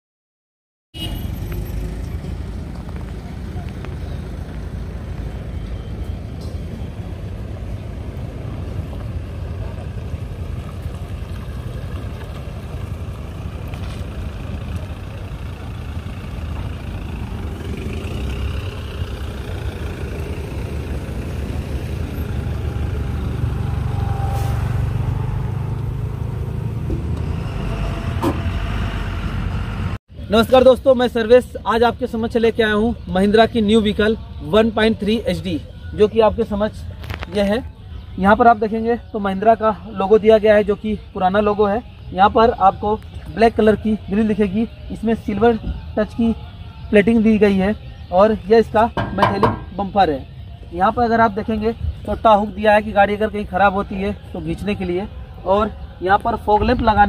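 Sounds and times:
diesel engine rumbling: 1.0 - 57.0.

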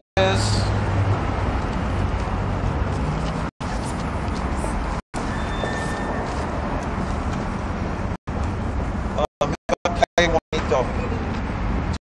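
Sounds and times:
road traffic rumble: 0.2 - 12.0.

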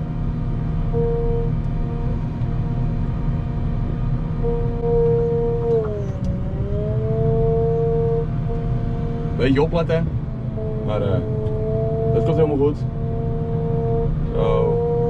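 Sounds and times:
engine whine: 0.0 - 15.0
wheel loader engine drone: 0.0 - 15.0.

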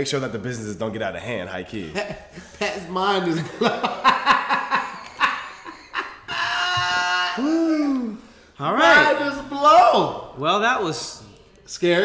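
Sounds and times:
men laughing: 1.8 - 8.2.

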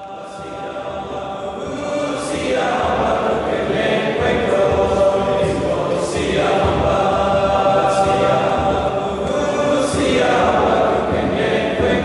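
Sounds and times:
boys' choir singing a hymn: 0.0 - 12.0.

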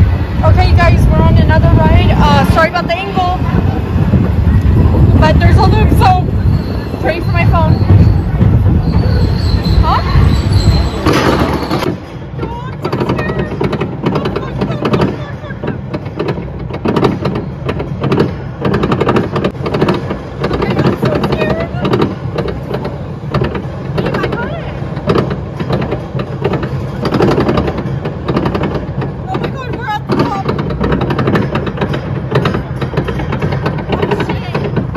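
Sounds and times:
roller coaster rattling on track: 0.0 - 34.9.

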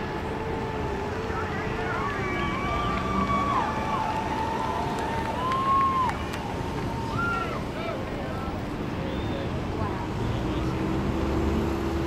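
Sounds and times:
people shouting: 0.4 - 7.7.

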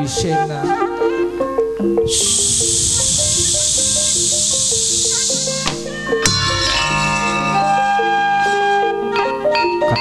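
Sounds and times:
loud steady high hiss: 2.0 - 7.8
gamelan ensemble playing: 6.1 - 10.0.

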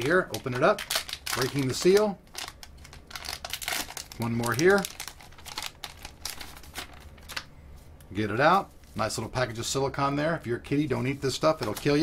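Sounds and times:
plastic bag crinkling and rustling: 0.0 - 7.9, 11.0 - 12.0.

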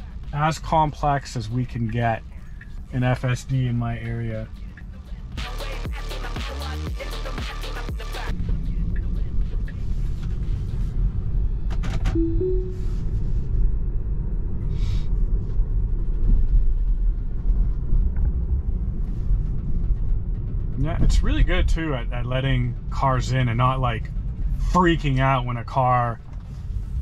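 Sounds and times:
faint music: 0.0 - 5.5, 8.3 - 13.0
road noise inside car: 0.0 - 5.9, 8.2 - 27.0
two-note tone: 12.2 - 13.0.

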